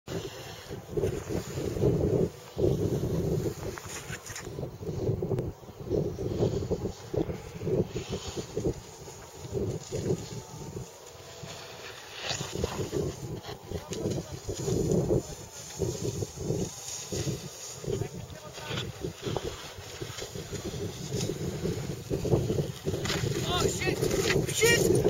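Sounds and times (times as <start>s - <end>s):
wind buffeting microphone: 0.1s - 25.0s.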